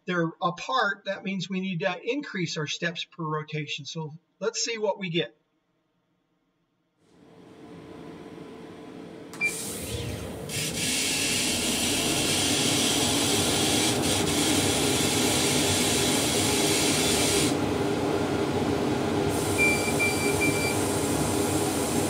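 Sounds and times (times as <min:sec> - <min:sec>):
short beeps: 0:19.6 - 0:20.8.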